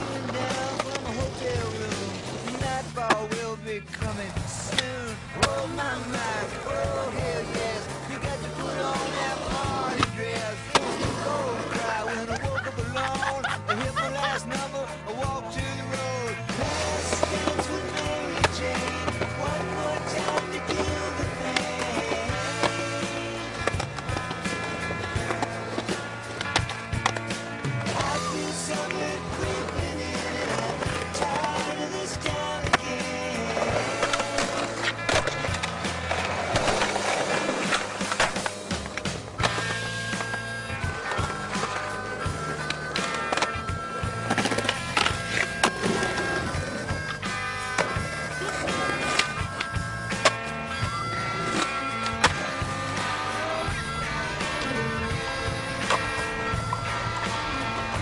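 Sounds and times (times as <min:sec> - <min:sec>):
skateboard clacks: 0:00.0 - 0:14.7, 0:15.9 - 0:58.0
music with bass line: 0:00.0 - 0:58.0
skateboard wheels rolling on concrete: 0:00.0 - 0:58.0.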